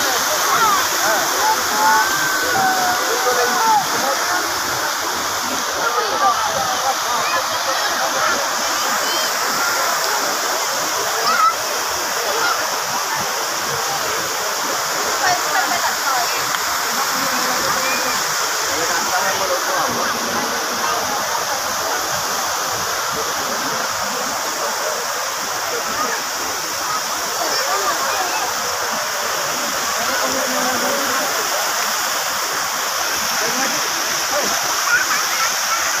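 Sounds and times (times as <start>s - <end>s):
crowd chatter: 0.0s - 36.0s
fountain jets splashing into pool: 0.0s - 36.0s.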